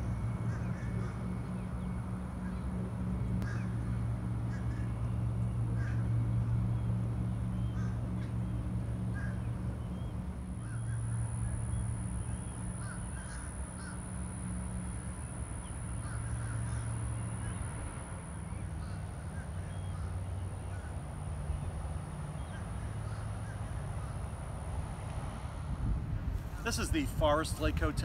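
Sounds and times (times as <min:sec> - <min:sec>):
birds calling: 0:00.0 - 0:24.6
steady low hum: 0:00.0 - 0:28.0.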